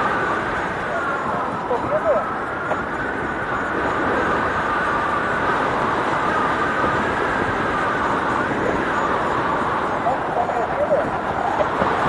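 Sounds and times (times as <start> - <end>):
faint wavering whistle tones: 0.0 - 11.8
wind rushing over microphone: 0.0 - 12.0.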